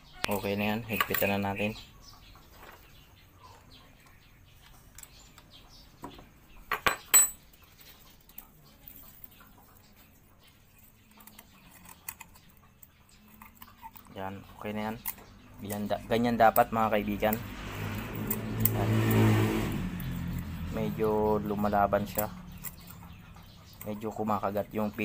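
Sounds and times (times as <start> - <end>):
metal tools clinking on engine: 0.2 - 1.8, 6.7 - 8.4.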